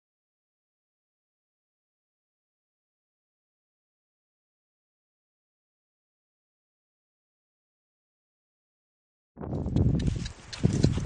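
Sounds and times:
donkey hoof steps: 0:09.5 - 0:11.0
footsteps on dirt: 0:09.5 - 0:11.0.

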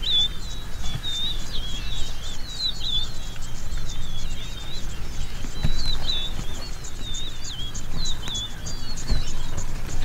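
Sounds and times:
birds warbling: 0:00.0 - 0:10.0
low background rumble: 0:00.0 - 0:10.0.

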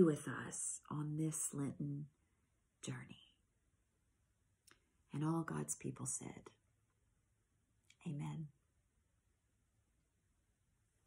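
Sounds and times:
woman speaking quietly: 0:08.0 - 0:08.5.

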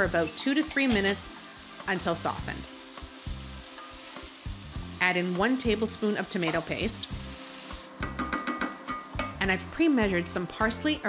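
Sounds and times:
vegetables sizzling in a pot: 0:00.0 - 0:10.5.

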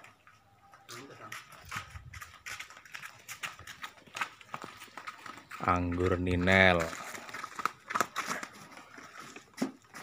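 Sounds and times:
light footsteps on pavement: 0:01.1 - 0:10.0.

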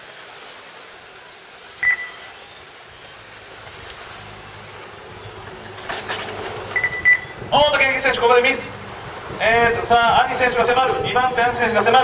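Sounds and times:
rc car motors whining: 0:00.0 - 0:12.0
short electronic beep: 0:01.8 - 0:02.2, 0:06.8 - 0:07.3.

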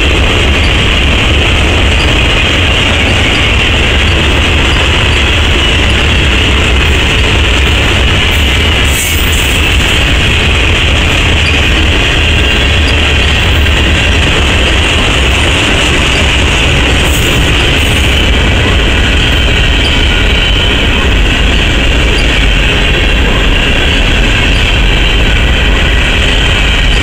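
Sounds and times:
freight train wheels rumbling on rail: 0:00.0 - 0:27.0.

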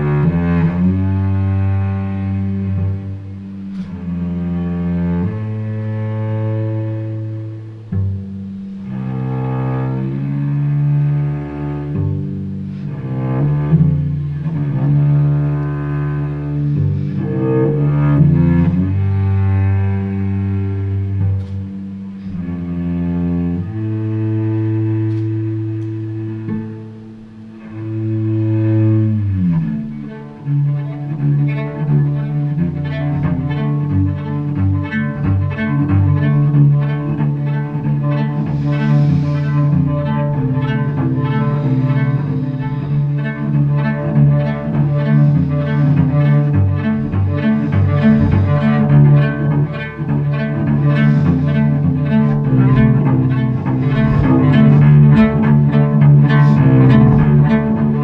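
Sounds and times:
cello played with bow: 0:00.0 - 0:58.0.

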